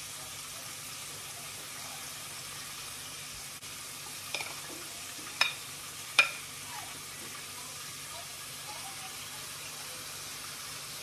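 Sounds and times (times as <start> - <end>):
oil sizzling in a frying pan: 0.0 - 11.0
metal spoon clinking ceramic bowl: 5.4 - 5.6, 6.2 - 6.4.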